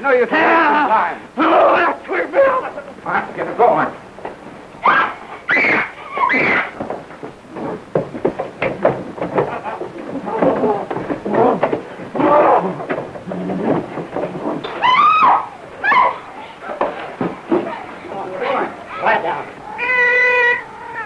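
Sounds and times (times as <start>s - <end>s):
clattering knocks and bumps: 4.1s - 4.8s, 5.4s - 18.6s
women crying out shrilly: 4.8s - 6.8s, 14.8s - 16.2s, 19.7s - 21.0s.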